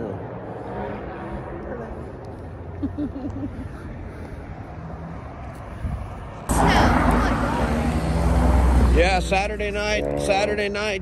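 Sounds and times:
car passing: 0:00.0 - 0:11.0
outdoor background noise: 0:00.0 - 0:11.0
street traffic: 0:00.0 - 0:11.0.

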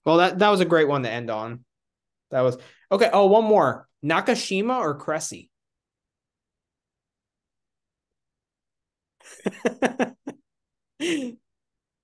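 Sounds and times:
man laughing: 0:09.2 - 0:10.4, 0:11.0 - 0:11.4.

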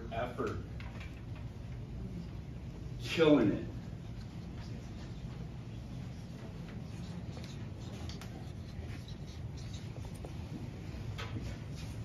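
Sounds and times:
low room hum: 0:00.0 - 0:12.0
markers squeaking on whiteboards: 0:04.1 - 0:10.8.

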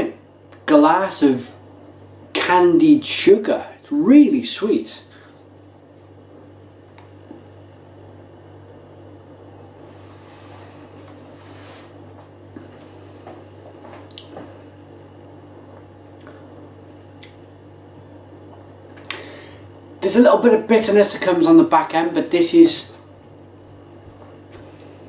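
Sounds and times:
steady low hum: 0:00.0 - 0:25.0
wet mouth clicks: 0:14.1 - 0:14.4.

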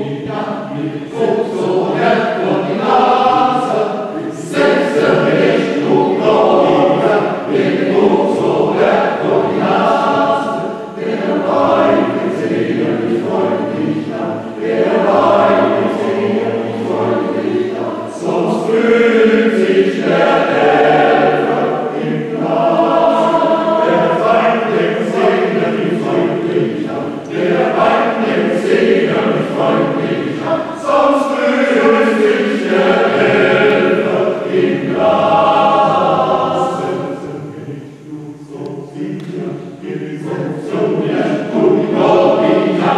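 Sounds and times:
choir singing: 0:00.0 - 0:42.9.

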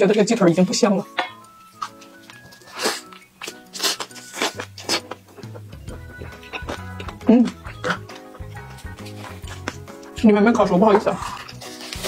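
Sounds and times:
background music: 0:00.0 - 0:12.0
wet chewing and biting: 0:01.7 - 0:10.2, 0:10.8 - 0:12.0.

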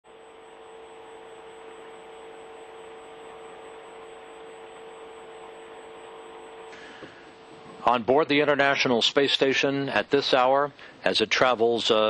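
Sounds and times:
electrical hum with hiss: 0:00.1 - 0:12.0.

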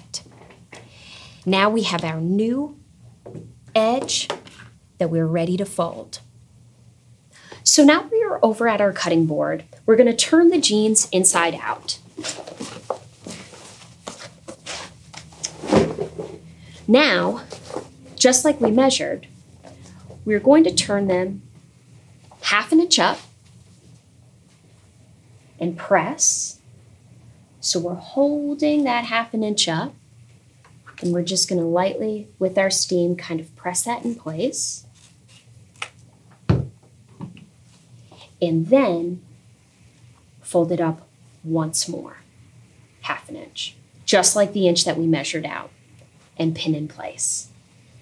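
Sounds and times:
jeans rustling and swishing: 0:11.9 - 0:16.5, 0:17.2 - 0:18.7.

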